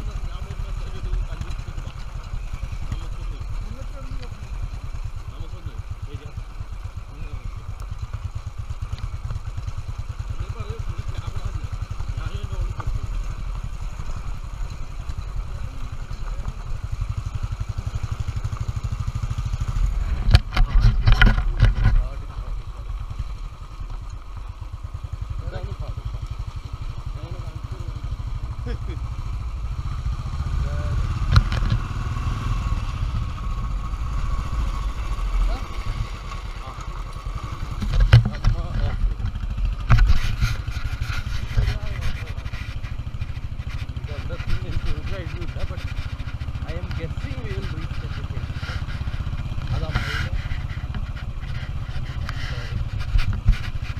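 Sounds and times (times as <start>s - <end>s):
knocks and clatter of bike: 0.0s - 53.9s
motorcycle engine running: 0.0s - 53.9s.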